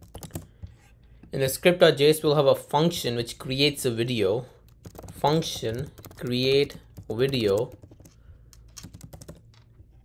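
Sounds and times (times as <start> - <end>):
quiet keyboard keystrokes: 0.0 - 0.8, 4.6 - 9.8.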